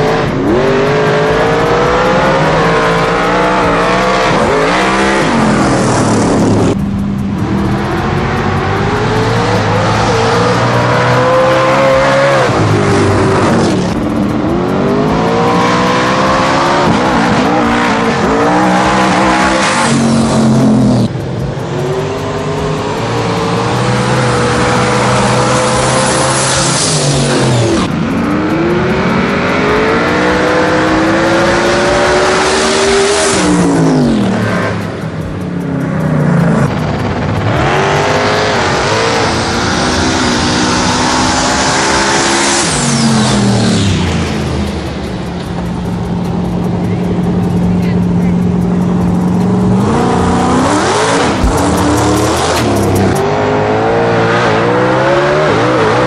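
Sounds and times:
drag cars racing at full throttle: 0:00.0 - 0:56.0.

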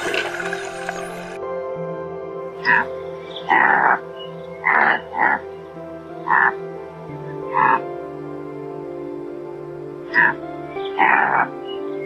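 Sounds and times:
background piano music: 0:00.0 - 0:12.0
antelope harsh calls: 0:02.6 - 0:06.6, 0:10.0 - 0:12.0.

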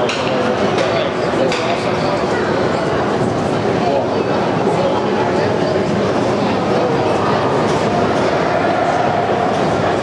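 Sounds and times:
indistinct chatter: 0:00.0 - 0:10.0
loud rushing arena noise: 0:00.0 - 0:10.0.

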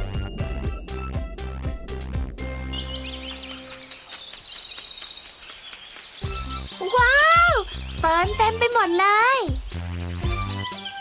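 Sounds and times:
birds chirping in high trills: 0:02.4 - 0:11.0
soft background music: 0:05.9 - 0:11.0.

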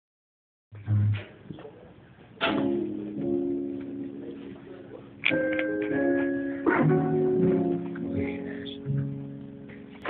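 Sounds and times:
chords ringing: 0:02.5 - 0:10.0.

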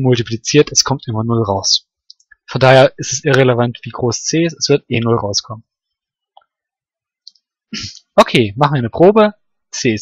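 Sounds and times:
man speaking: 0:00.0 - 0:05.8, 0:07.8 - 0:10.0.

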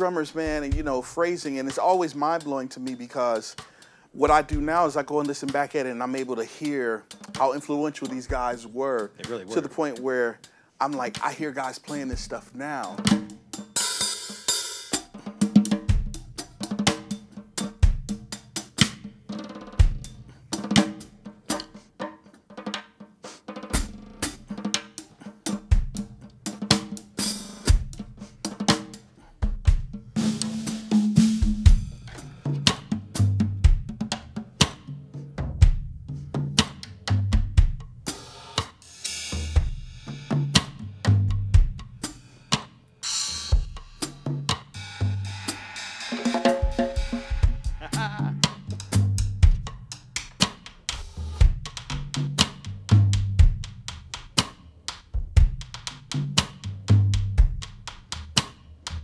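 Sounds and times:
bass drum: 0:00.0 - 0:02.3, 0:04.3 - 0:06.0, 0:06.6 - 0:10.2, 0:11.0 - 0:13.7, 0:15.0 - 0:21.8, 0:23.8 - 0:42.7, 0:43.5 - 0:59.0
snare and tom phrases: 0:00.0 - 0:59.0
hi-hat: 0:47.0 - 0:59.0.

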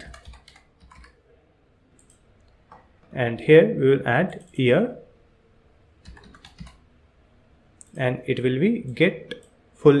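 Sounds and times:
computer keyboard typing: 0:00.0 - 0:01.2, 0:06.0 - 0:06.8.

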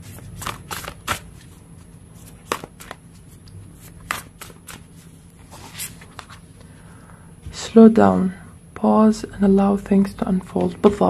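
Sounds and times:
cards shuffling: 0:00.0 - 0:06.4.

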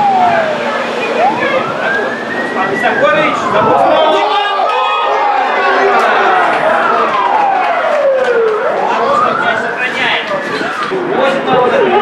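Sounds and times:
siren wailing: 0:00.0 - 0:12.0.

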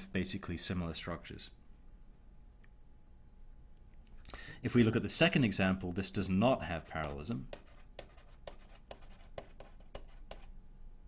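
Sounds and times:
stylus strokes and taps on screen: 0:06.4 - 0:10.6.

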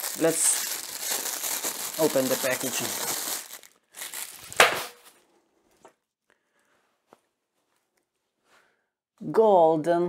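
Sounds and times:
plastic pouch crinkling: 0:00.0 - 0:05.3.

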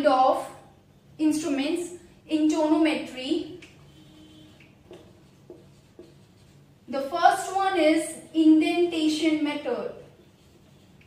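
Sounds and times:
marker writing on whiteboard: 0:02.5 - 0:07.8, 0:08.4 - 0:11.0.

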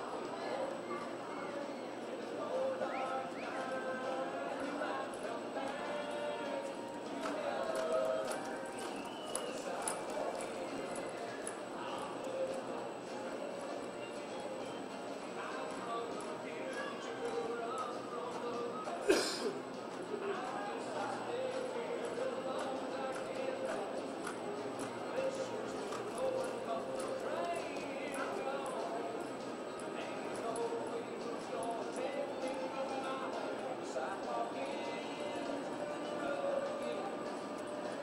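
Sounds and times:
people talking: 0:00.0 - 0:38.0.

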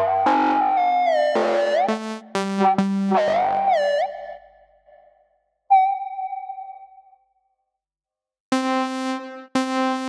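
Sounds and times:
synthesizer notes: 0:00.0 - 0:04.5, 0:08.5 - 0:10.0.

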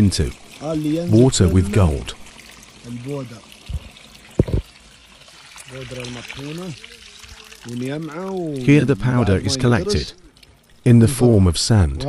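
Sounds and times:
person speaking: 0:00.0 - 0:02.2, 0:07.7 - 0:12.0.

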